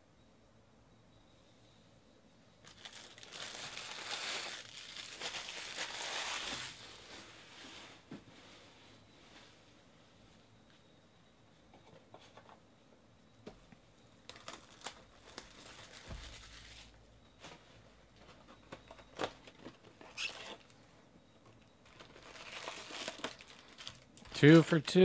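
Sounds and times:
foil packs rustling and crinkling: 2.6s - 7.7s, 14.2s - 17.0s, 21.8s - 25.0s.

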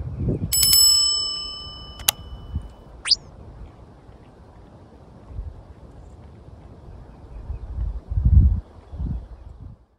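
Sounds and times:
bright bell ding: 0.6s - 2.7s
sharp click: 2.0s - 2.3s
short rising chirp: 3.0s - 3.3s.

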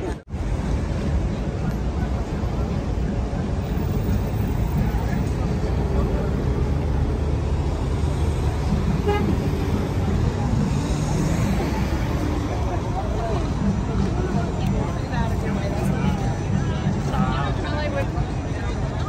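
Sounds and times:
crowd chatter: 0.0s - 19.0s
street traffic: 0.0s - 19.0s
car horn toot: 9.0s - 9.5s.

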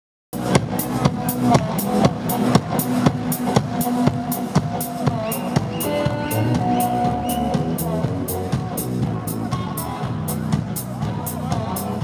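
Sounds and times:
drum kit beat: 0.4s - 12.0s
electric guitar: 5.3s - 12.0s.

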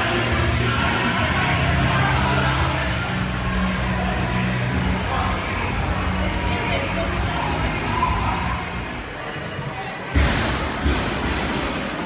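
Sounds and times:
hubbub of busy gym: 0.0s - 12.0s.

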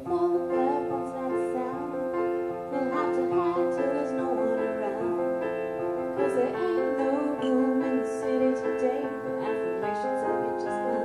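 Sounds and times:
woman singing: 0.0s - 5.5s, 6.1s - 11.0s
piano chords: 0.0s - 11.0s.

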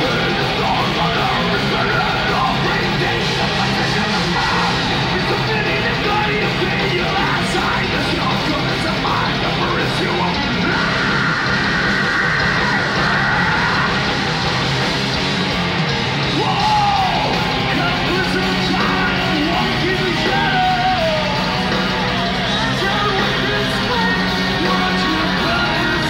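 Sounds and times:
shouted vocal: 0.0s - 14.8s, 16.2s - 26.0s
live metal band playing: 0.0s - 26.0s.

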